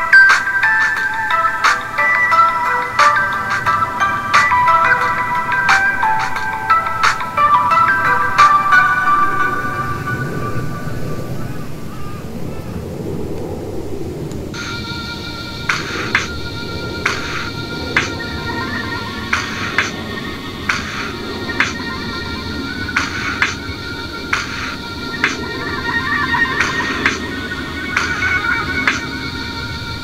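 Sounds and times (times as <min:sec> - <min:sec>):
soft bell-like melody: 0:00.0 - 0:11.4.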